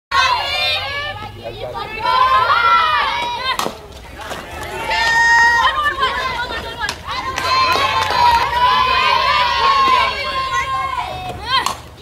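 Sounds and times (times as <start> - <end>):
high voices yelling and chanting: 0.1 - 12.0
long held shout: 4.7 - 6.4, 7.1 - 11.6.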